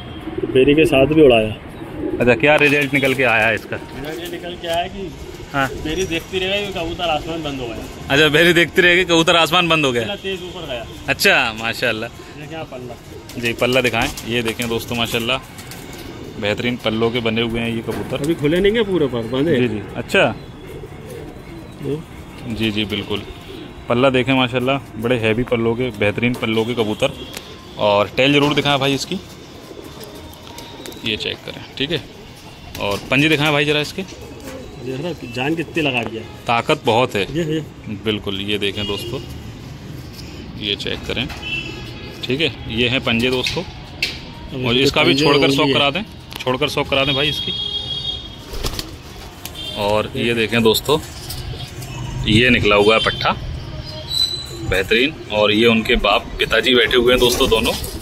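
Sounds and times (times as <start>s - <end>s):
pigeons cooing: 0.0s - 8.1s, 12.1s - 24.0s, 26.1s - 37.9s.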